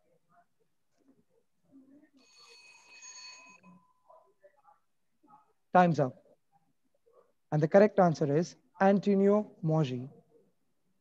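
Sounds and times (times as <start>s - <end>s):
faint electronic ringing tone: 1.7s - 5.6s.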